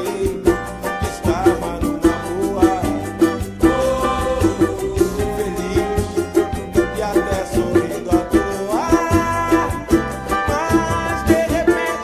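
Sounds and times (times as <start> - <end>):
cavaquinho strumming: 0.0 - 12.0
recorded song: 0.0 - 12.0.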